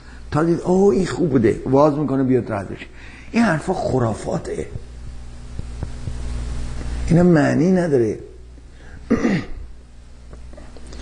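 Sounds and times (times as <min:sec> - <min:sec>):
low steady hum: 0:00.0 - 0:11.0
man clearing his throat: 0:09.0 - 0:09.6.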